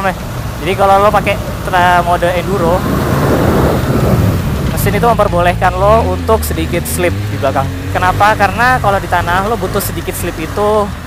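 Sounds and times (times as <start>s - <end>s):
motorcycle engine running: 0.0s - 11.0s
wind buffeting microphone: 0.2s - 7.9s.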